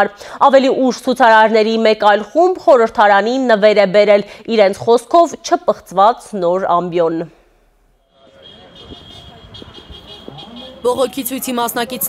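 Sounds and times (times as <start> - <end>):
low traffic rumble: 8.2 - 12.0.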